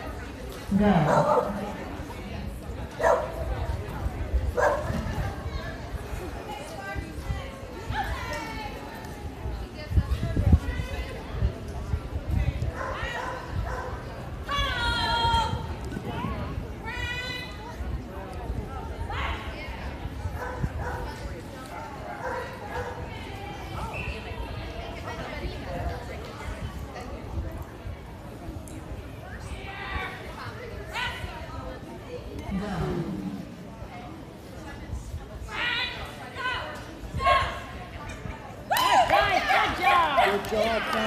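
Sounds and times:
dog barking: 0:01.1 - 0:01.6, 0:03.0 - 0:03.4, 0:04.6 - 0:04.9, 0:22.2 - 0:23.0.

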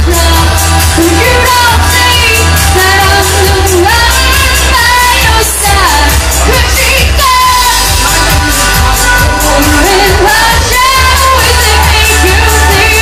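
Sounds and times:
drums and cymbals: 0:00.0 - 0:13.0
heavy bass line: 0:00.0 - 0:13.0
woman singing: 0:00.0 - 0:13.0.

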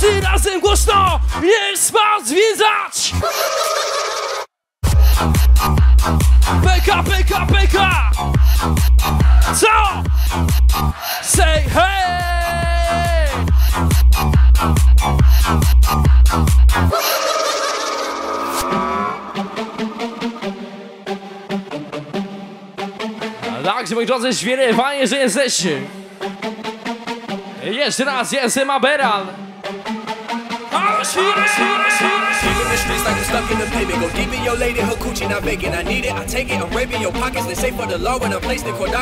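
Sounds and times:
electronic dance music: 0:00.0 - 0:01.5, 0:04.8 - 0:10.8, 0:11.4 - 0:22.7, 0:30.5 - 0:39.0
warbling trilling synth effect: 0:16.9 - 0:20.6
pitched synth lead swooping: 0:16.9 - 0:20.8, 0:31.4 - 0:36.4
held buzzy synth chord: 0:32.1 - 0:36.4
thumping beat: 0:32.1 - 0:37.0.

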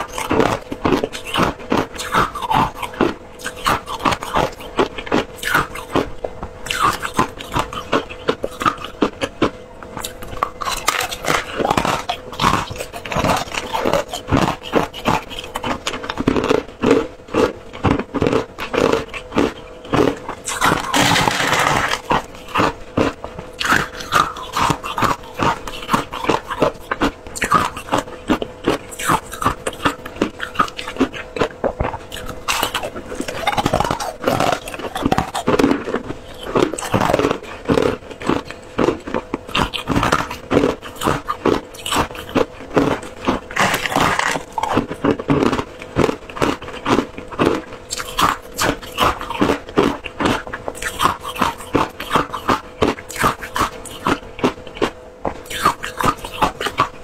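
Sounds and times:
ice crunching while chewed: 0:00.0 - 0:57.0.

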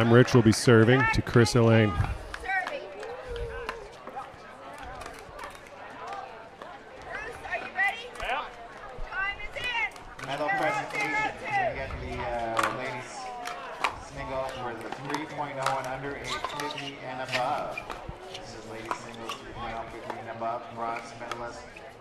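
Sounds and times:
people talking: 0:00.0 - 0:21.8.

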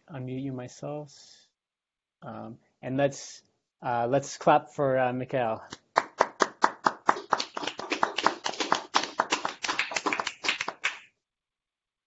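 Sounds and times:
people clapping: 0:05.7 - 0:11.1.

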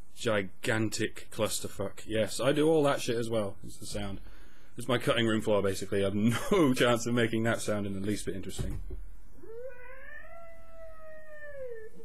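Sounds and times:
long meow-like cry: 0:09.4 - 0:12.0.

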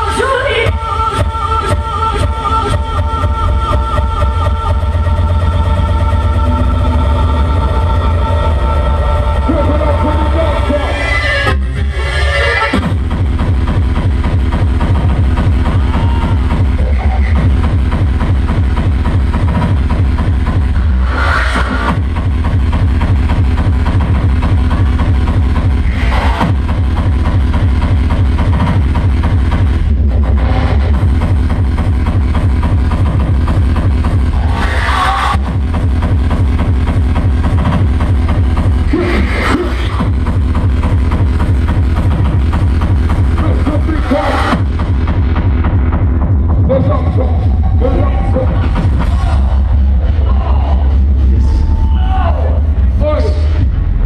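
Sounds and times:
hardcore electronic dance music: 0:00.0 - 0:54.0
heavy bass-drum beat: 0:00.0 - 0:54.0.

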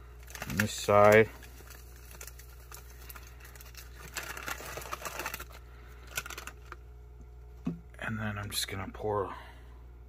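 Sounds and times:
plastic and foil pouch crinkling: 0:00.1 - 0:06.8.

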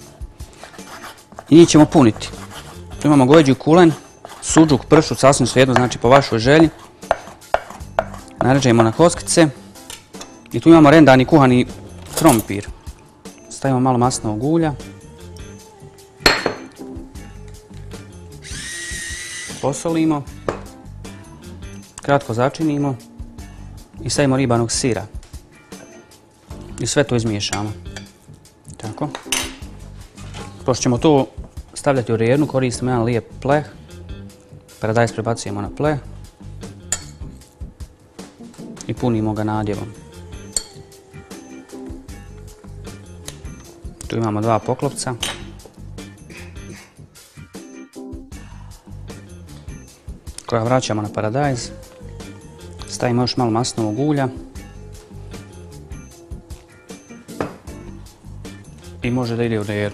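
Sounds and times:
faint background music: 0:00.0 - 0:59.9
kitchenware clinking: 0:12.0 - 0:12.7, 0:16.2 - 0:16.8, 0:29.1 - 0:29.7, 0:36.9 - 0:37.2, 0:40.5 - 0:40.8, 0:44.7 - 0:45.6
metal spoon clinking on baking tray: 0:36.9 - 0:37.2.

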